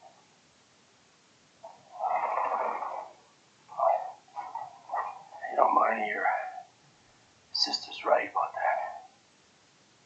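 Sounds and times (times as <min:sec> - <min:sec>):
person whispering: 0:01.9 - 0:06.7, 0:07.5 - 0:09.2.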